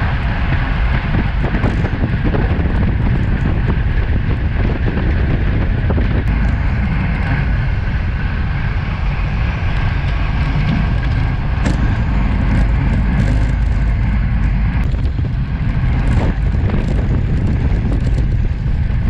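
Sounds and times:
tyre road noise: 0.0s - 19.0s
wind noise on microphone: 0.0s - 19.0s.

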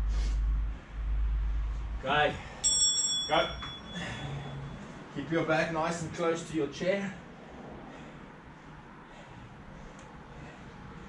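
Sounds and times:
bell-like chime: 2.6s - 4.8s.

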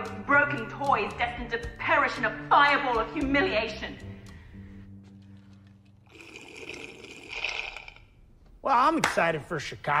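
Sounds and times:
drink slurped through a straw: 6.1s - 8.2s.

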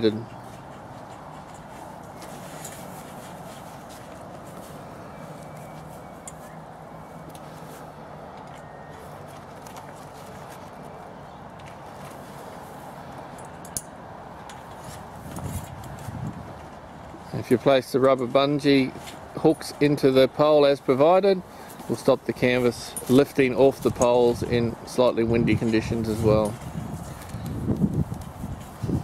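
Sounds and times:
outdoor background noise: 0.0s - 29.0s.

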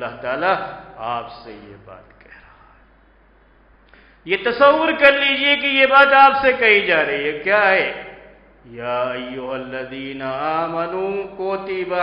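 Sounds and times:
man chanting melodic recitation: 0.0s - 2.2s, 4.3s - 12.0s.

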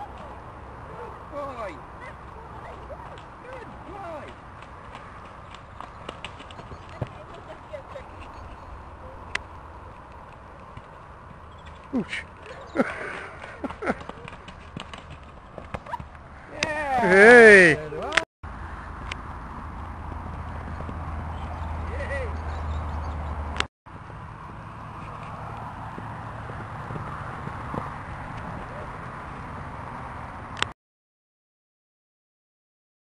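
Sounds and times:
horse hoofbeats on grass: 2.0s - 18.1s, 18.9s - 23.0s, 24.4s - 29.6s.

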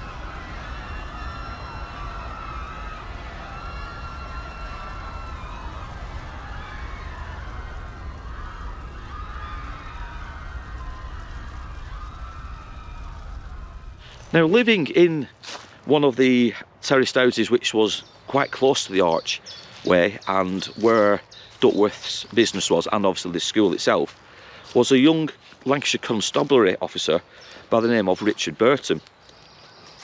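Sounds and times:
wailing siren tones: 0.0s - 14.5s
low rumble: 0.0s - 14.6s.

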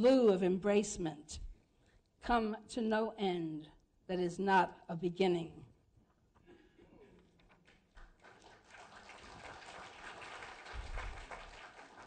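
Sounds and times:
distant audience applause: 7.7s - 12.0s.

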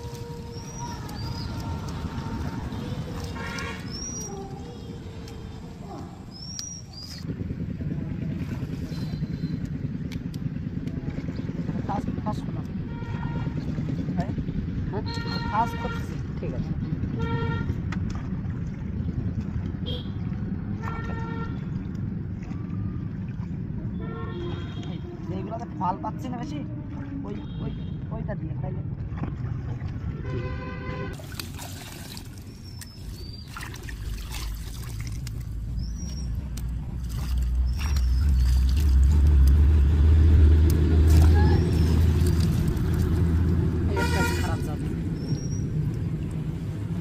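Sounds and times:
steady low rumble: 0.0s - 27.2s, 27.8s - 47.0s
vehicle horns honking: 2.7s - 3.9s, 12.9s - 13.7s, 15.0s - 16.1s, 17.2s - 17.8s, 19.8s - 20.2s, 20.8s - 21.7s, 23.9s - 25.3s, 30.1s - 31.2s, 43.9s - 44.8s.

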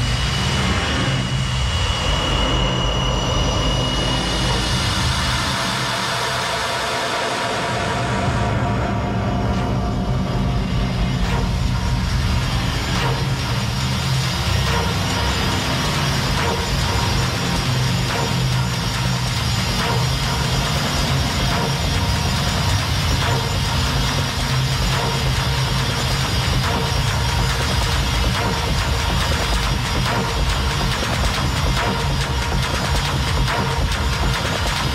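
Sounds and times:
techno music: 4.2s - 34.9s.

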